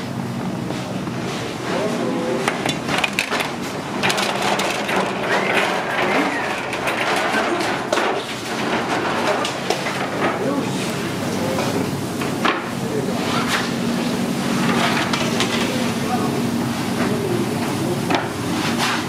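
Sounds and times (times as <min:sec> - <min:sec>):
low machinery hum: 0:00.0 - 0:19.0
metal sheet pans clattering: 0:02.4 - 0:11.0.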